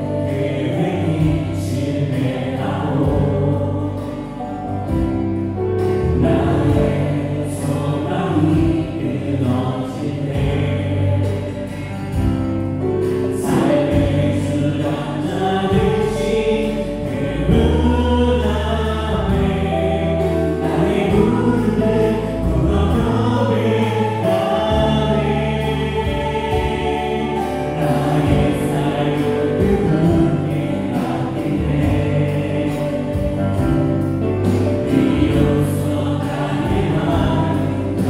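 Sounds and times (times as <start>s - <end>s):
group of voices singing: 0.0s - 38.0s
praise band playing gospel song: 0.0s - 38.0s.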